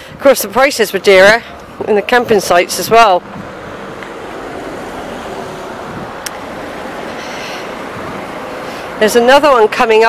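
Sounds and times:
car passing on road: 0:00.9 - 0:10.0.

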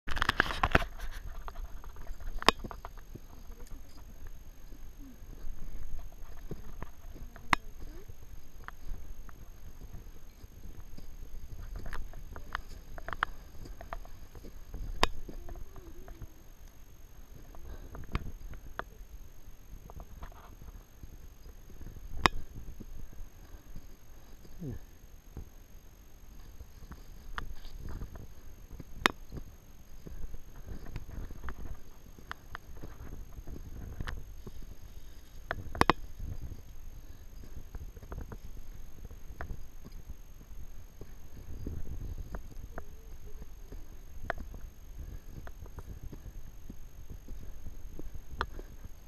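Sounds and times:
footsteps crunching on dry path: 0:00.1 - 0:16.1
footsteps on dirt trail: 0:00.1 - 0:16.4, 0:26.3 - 0:49.0
low steady rumble: 0:00.6 - 0:49.0.

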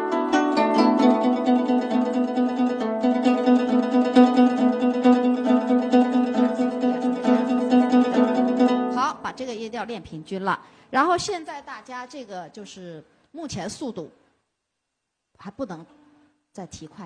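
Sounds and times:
zither tremolo plucking: 0:00.0 - 0:09.6.

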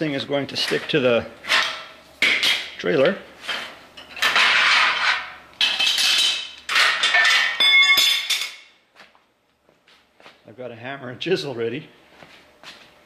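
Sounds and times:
metal clamps clanking on concrete: 0:03.6 - 0:08.7.

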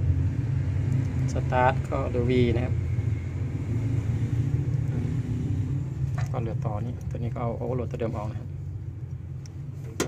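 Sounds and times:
faint hum: 0:00.0 - 0:10.0
low background rumble: 0:00.0 - 0:10.0.

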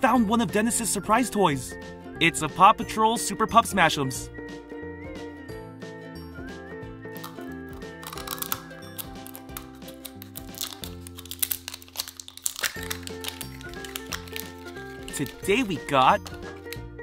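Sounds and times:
light background music: 0:00.0 - 0:17.0
plastic shrink-wrap crinkling: 0:07.2 - 0:16.8.

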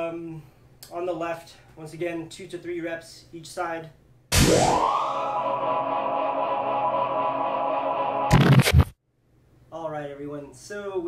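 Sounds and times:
held synth chord: 0:04.3 - 0:08.3
synthesized rising swoop: 0:04.3 - 0:08.9.

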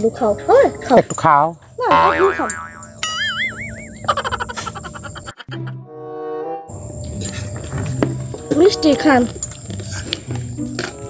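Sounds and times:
wobbling boing tones: 0:01.8 - 0:04.2.

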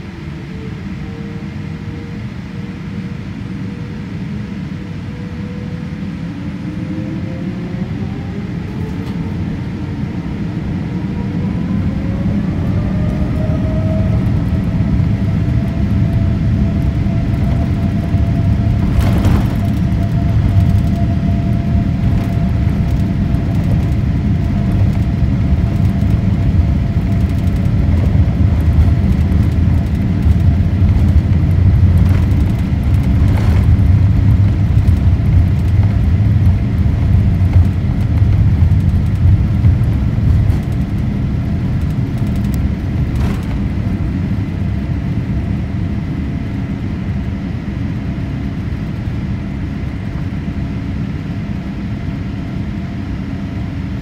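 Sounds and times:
jet engines at takeoff thrust: 0:00.0 - 0:54.0
wheels rumbling on runway: 0:00.0 - 0:54.0.

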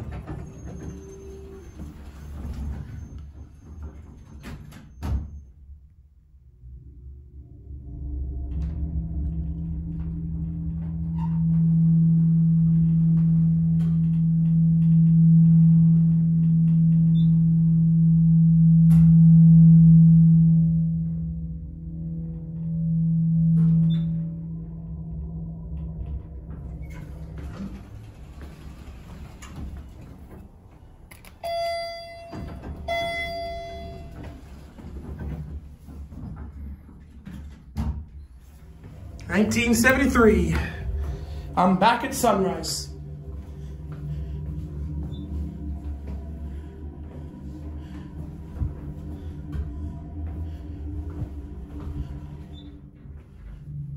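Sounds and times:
hydraulic pump low hum: 0:00.0 - 0:53.9
elevator chime tones: 0:00.3 - 0:04.2, 0:31.1 - 0:35.4.

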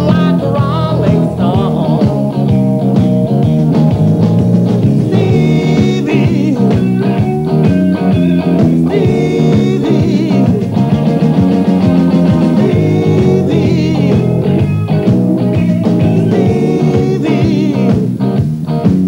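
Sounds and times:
man singing: 0:00.0 - 0:02.3, 0:05.0 - 0:07.2, 0:08.8 - 0:10.8, 0:11.9 - 0:14.6, 0:16.0 - 0:18.1
blues-rock band playing live: 0:00.0 - 0:19.0.

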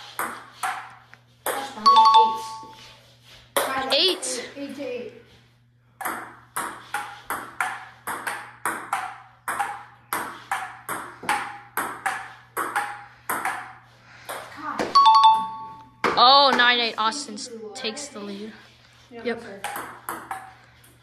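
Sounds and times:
table tennis ball hits: 0:00.0 - 0:02.4, 0:06.0 - 0:16.8, 0:19.5 - 0:20.6.

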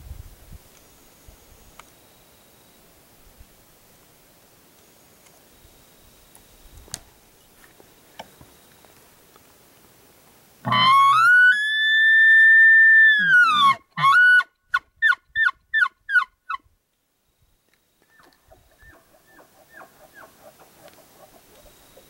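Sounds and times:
elk bugling: 0:10.6 - 0:12.0, 0:13.0 - 0:16.3, 0:18.1 - 0:22.0.

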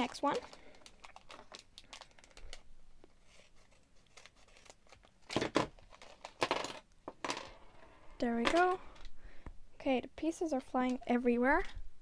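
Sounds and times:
plastic bag ripping: 0:00.0 - 0:02.6
plastic foil crinkling: 0:00.0 - 0:06.5.

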